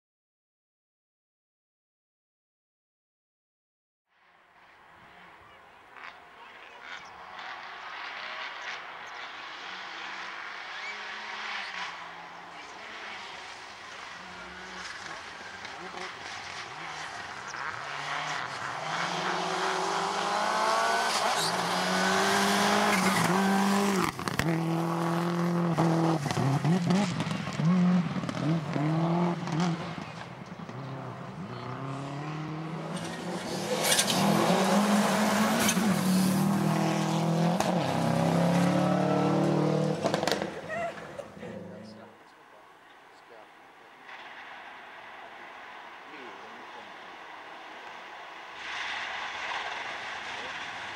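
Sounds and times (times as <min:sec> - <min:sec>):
rally car engine revving: 0:05.8 - 0:42.2.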